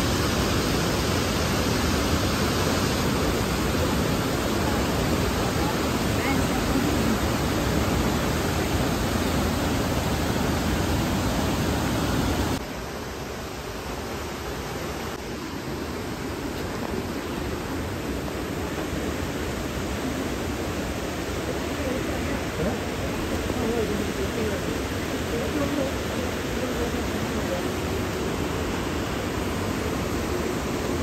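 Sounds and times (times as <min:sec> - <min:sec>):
river water rushing: 0:00.0 - 0:31.0
waterfall rushing: 0:00.0 - 0:31.0.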